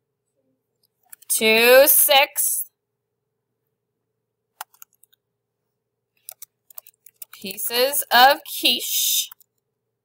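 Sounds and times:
computer keyboard clicks: 0:04.6 - 0:05.2, 0:06.2 - 0:07.5.

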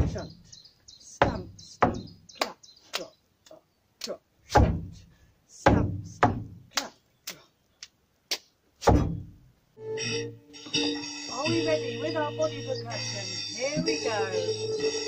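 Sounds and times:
boot stamps on wooden board: 0:01.2 - 0:02.2, 0:04.6 - 0:05.0, 0:05.7 - 0:06.6, 0:08.8 - 0:09.3
hand claps and slaps: 0:08.3 - 0:08.5.

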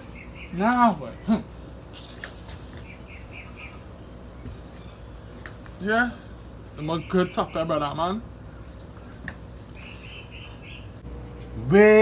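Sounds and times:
small bird chirping: 0:00.0 - 0:05.5, 0:09.7 - 0:11.0.

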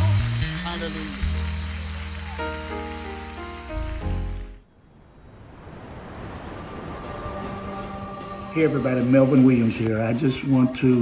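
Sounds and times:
crowd noise hiss: 0:00.0 - 0:04.0.

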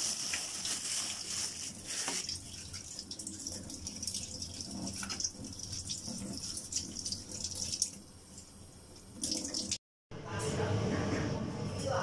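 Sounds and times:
water running into sink: 0:00.0 - 0:09.8.

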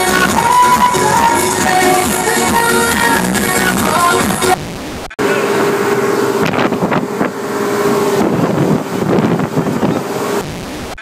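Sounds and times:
boat motor whining: 0:00.0 - 0:11.0
wind buffeting microphone: 0:06.4 - 0:10.4.

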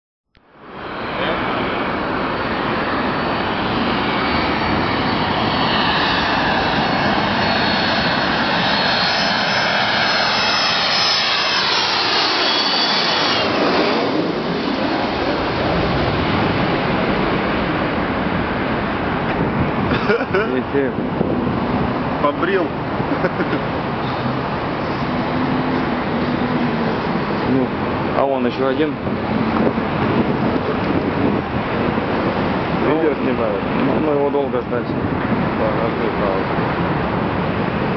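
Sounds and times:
jet airliner roar: 0:00.4 - 0:37.9
jet engine whine: 0:00.4 - 0:37.9.

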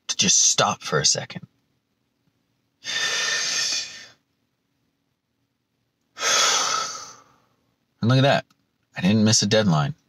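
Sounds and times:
man sighing: 0:02.8 - 0:04.2, 0:06.2 - 0:07.4.

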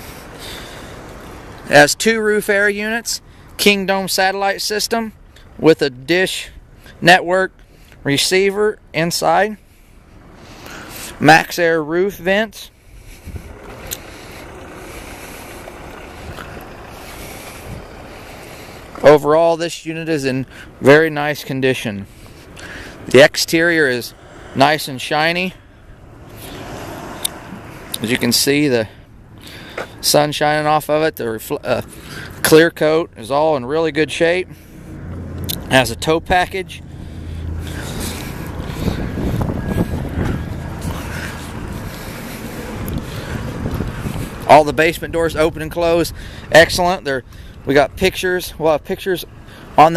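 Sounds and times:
wind buffeting microphone: 0:12.9 - 0:18.9, 0:37.0 - 0:48.1
wind on microphone: 0:37.9 - 0:42.0, 0:42.7 - 0:46.3.

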